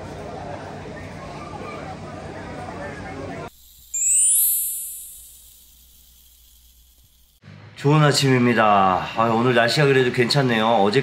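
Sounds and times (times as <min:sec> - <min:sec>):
shimmering transition sound effect: 0:03.7 - 0:05.8.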